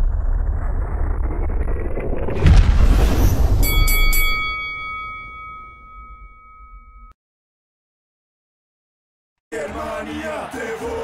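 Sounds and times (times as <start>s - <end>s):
deep boom: 0.0s - 3.6s
bell-like metallic chime: 3.6s - 7.2s.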